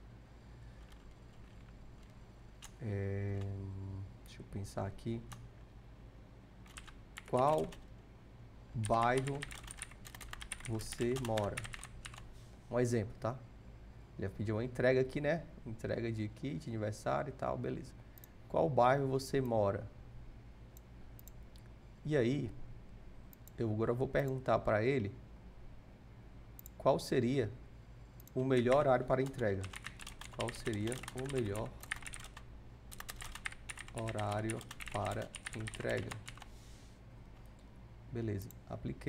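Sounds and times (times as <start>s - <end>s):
computer keyboard typing: 0.8s - 2.8s, 6.6s - 7.8s, 8.8s - 12.3s, 28.2s - 36.5s
computer mouse clicks: 20.8s - 21.7s, 26.6s - 26.8s.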